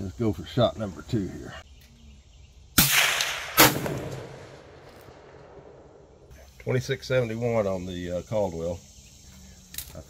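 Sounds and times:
rifle shot: 2.8 - 5.9.

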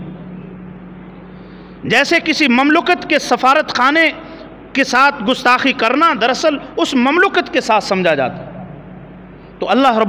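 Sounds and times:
low hum: 0.0 - 2.4, 8.1 - 9.7
man preaching: 1.8 - 8.5, 9.6 - 10.0.

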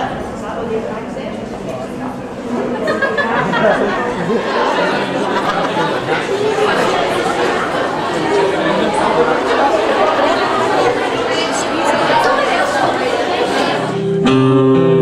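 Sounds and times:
audience chattering: 0.0 - 15.0.

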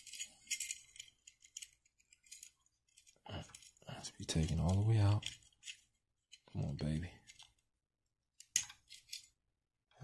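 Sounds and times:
metallic scrapes and clicks: 0.0 - 6.6.

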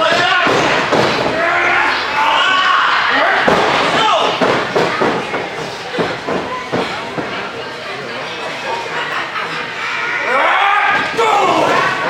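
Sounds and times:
voices shouting: 0.0 - 4.4, 10.0 - 12.0.

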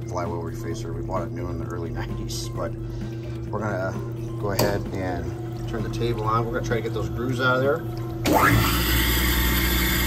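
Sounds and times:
grinding machine motor whine and hum: 4.3 - 10.0.

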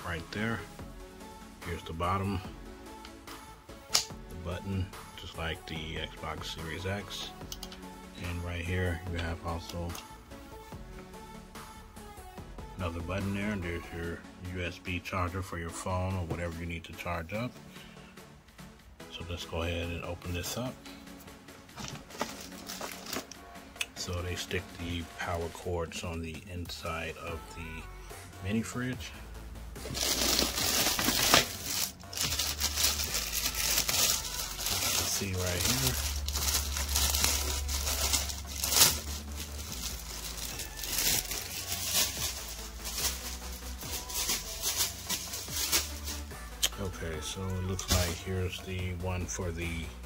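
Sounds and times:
background music: 0.0 - 50.0
plastic bag crinkling: 21.8 - 23.4, 29.8 - 46.3.

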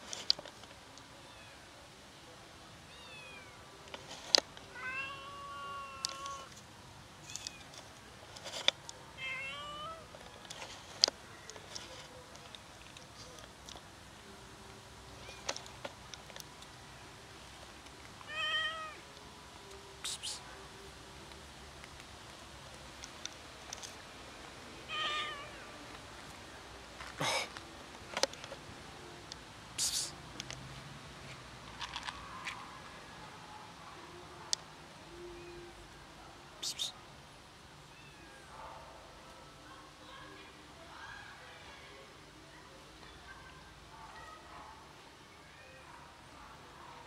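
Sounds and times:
kittens meowing: 4.8 - 6.5
faint ticks: 6.0 - 6.6.

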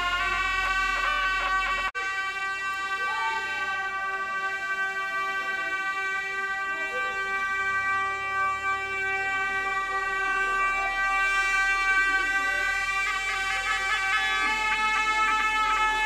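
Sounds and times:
reedy wind instrument playing: 0.0 - 16.0.

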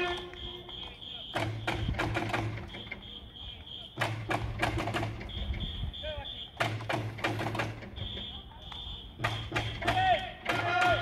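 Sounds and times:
electronic whistle tone: 0.0 - 4.0, 5.2 - 6.6, 7.9 - 9.8
taiko drum beats: 1.2 - 3.1, 3.9 - 11.0.

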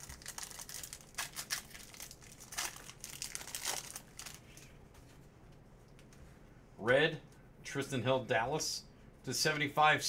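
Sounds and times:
foil wrapper crinkling: 0.0 - 4.7.

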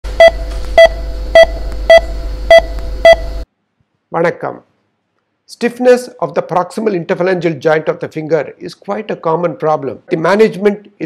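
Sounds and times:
low steady hum: 0.1 - 4.1
heart rate monitor beeping: 0.2 - 3.4.

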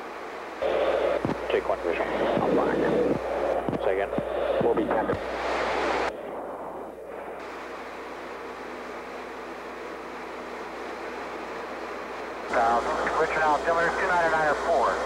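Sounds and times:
cockpit airflow and engine rush: 0.0 - 15.0
garbled radio voices: 0.6 - 5.3.

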